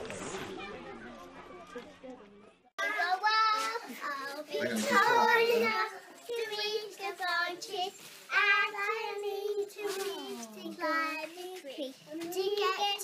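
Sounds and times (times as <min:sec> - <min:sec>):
girls singing in high voices: 0:02.8 - 0:11.6.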